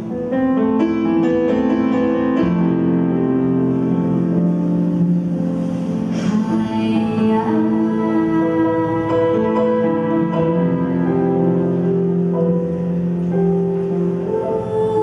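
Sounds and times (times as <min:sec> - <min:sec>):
piano chords ringing: 0:00.0 - 0:15.0
live band playing slow ballad: 0:01.8 - 0:15.0
woman singing: 0:06.2 - 0:11.0, 0:14.2 - 0:15.0.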